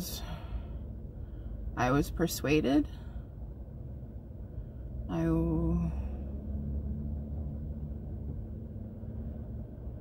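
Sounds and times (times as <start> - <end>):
car engine rumble: 0.0 - 10.0
faint steady hum: 0.0 - 10.0
tyres on road: 0.0 - 10.0.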